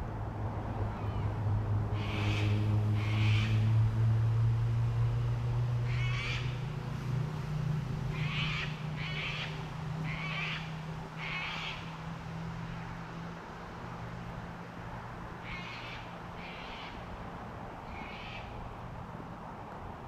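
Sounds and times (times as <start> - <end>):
low engine hum: 0.0 - 20.0.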